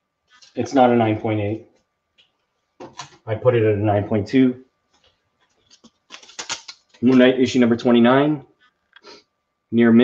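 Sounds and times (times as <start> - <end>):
plastic crinkling: 5.5 - 7.1.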